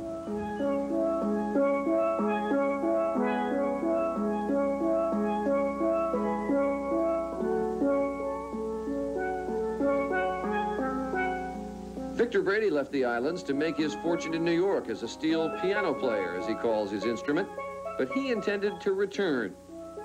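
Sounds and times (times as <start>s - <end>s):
steel pan notes ringing: 0.0s - 20.0s.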